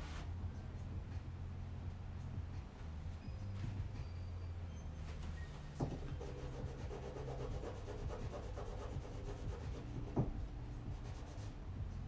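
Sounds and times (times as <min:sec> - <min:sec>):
low room hum: 0:00.0 - 0:12.0
pastel scratching on canvas: 0:05.8 - 0:10.3.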